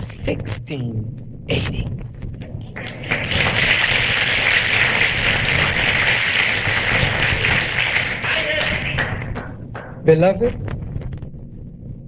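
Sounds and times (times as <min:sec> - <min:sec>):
audience applauding: 0:02.4 - 0:10.0.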